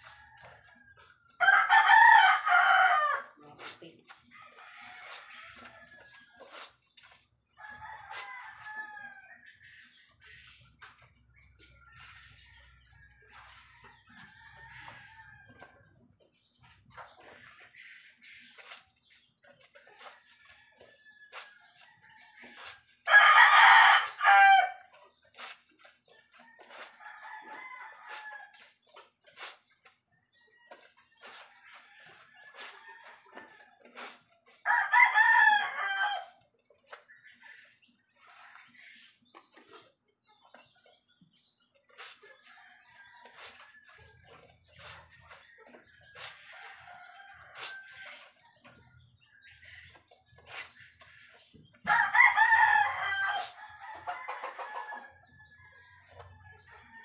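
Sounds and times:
chicken clucking: 0:00.0 - 0:57.0
rooster crowing: 0:01.4 - 0:03.3, 0:23.1 - 0:24.8, 0:34.6 - 0:36.4, 0:51.9 - 0:55.1.

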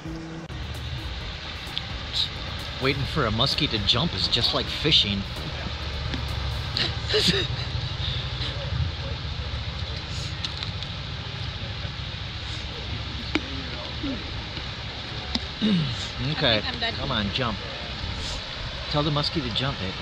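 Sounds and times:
water rushing over dam spillway: 0:00.6 - 0:20.0.

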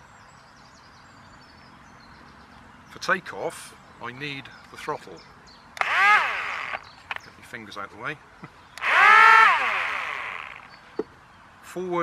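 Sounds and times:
electric propeller motors whining: 0:05.8 - 0:07.2, 0:08.8 - 0:10.8.

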